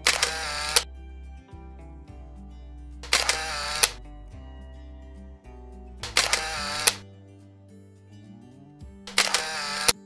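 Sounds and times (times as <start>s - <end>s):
camera shutter clicks: 0.0s - 0.8s, 3.0s - 4.0s, 6.0s - 7.0s, 9.1s - 10.0s
background music: 0.0s - 10.0s.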